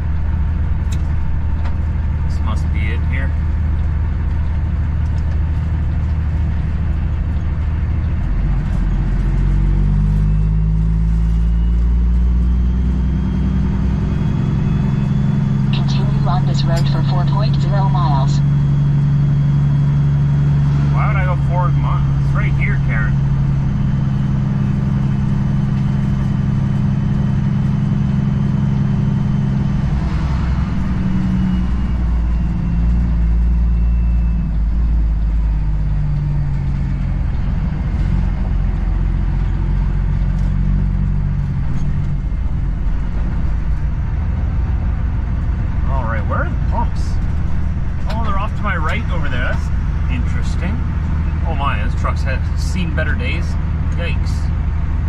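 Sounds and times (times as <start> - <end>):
diesel truck engine drone: 0.0 - 55.0.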